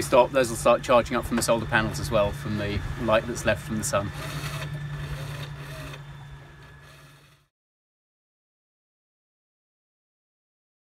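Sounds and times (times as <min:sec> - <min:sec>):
electric outboard motor humming: 0:00.0 - 0:07.5.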